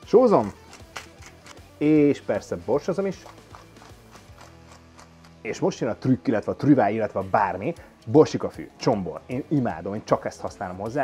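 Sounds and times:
pepper mill grinding: 0.0 - 5.5
soft background music: 0.0 - 11.0.

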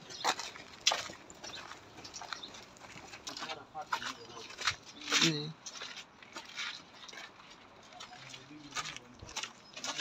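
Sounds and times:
footsteps on sandy dirt path: 0.0 - 10.0.

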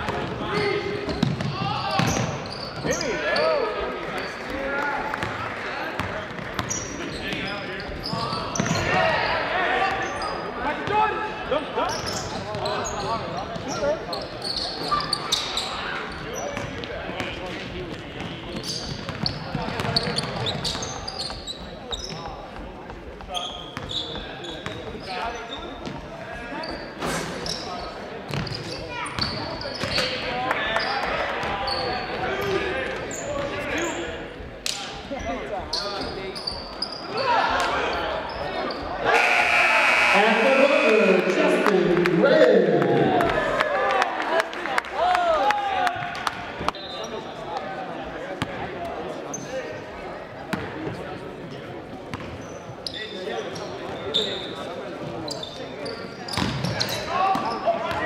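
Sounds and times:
sneakers squeaking: 0.0 - 4.5, 5.2 - 9.0, 9.9 - 10.9, 11.9 - 34.4, 35.0 - 37.2, 38.1 - 42.1, 50.5 - 51.0, 52.1 - 58.0
spectators chatting: 0.0 - 58.0.

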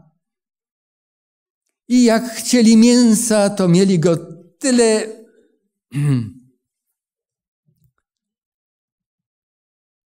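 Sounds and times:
man speaking: 1.9 - 6.4.

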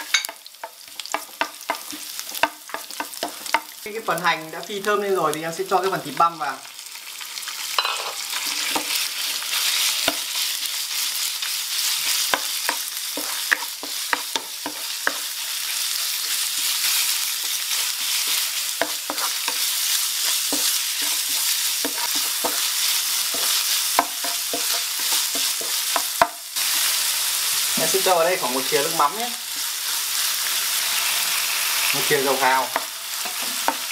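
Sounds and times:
meat sizzling in a frying pan: 0.0 - 33.9
wooden spoon scraping a pan: 8.1 - 10.5, 11.9 - 26.1.

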